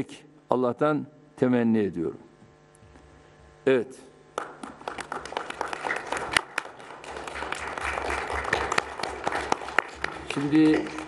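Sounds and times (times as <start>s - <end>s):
audience applauding: 4.4s - 11.0s.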